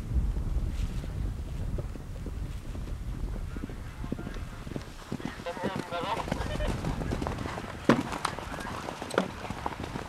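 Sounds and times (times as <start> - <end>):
wind rumbling on microphone: 0.0 - 10.0
horse hoofbeats on turf: 0.7 - 10.0.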